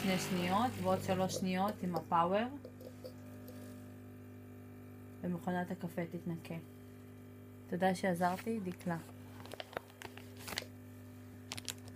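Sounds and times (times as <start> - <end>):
low steady hum: 0.0 - 11.9.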